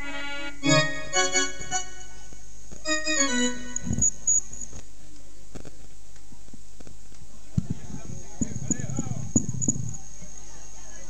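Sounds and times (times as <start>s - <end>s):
indistinct voices: 7.6s - 11.0s.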